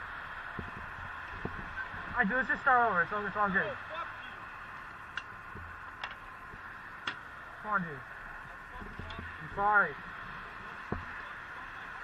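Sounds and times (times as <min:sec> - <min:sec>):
steady background hum: 0:00.0 - 0:12.0.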